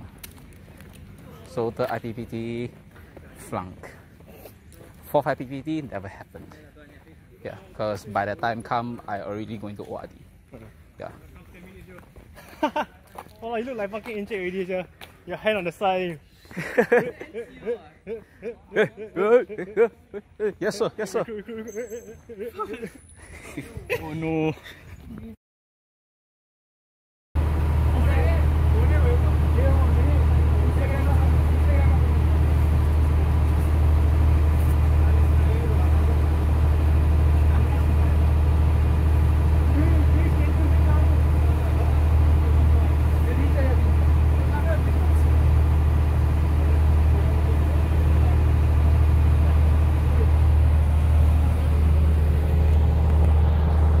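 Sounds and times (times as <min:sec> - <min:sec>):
boat engine droning: 0:27.4 - 0:54.0.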